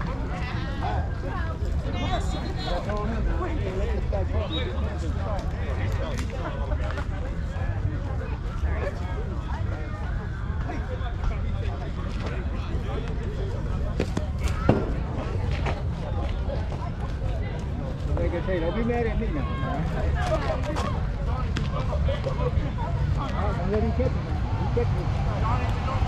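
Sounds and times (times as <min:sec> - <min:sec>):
people talking and calling out: 0:00.0 - 0:26.0.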